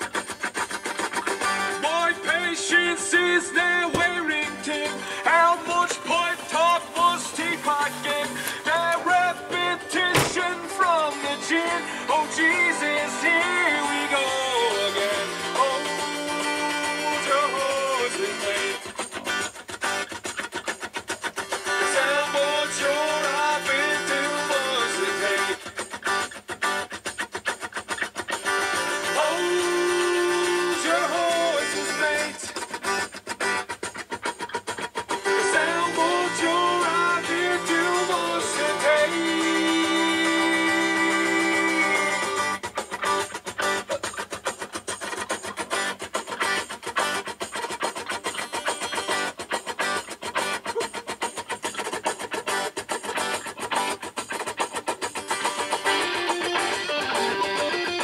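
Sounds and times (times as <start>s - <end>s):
guitar accompaniment: 0.0s - 58.0s
person singing: 1.5s - 19.4s, 21.6s - 25.8s, 28.7s - 32.7s, 35.2s - 44.3s.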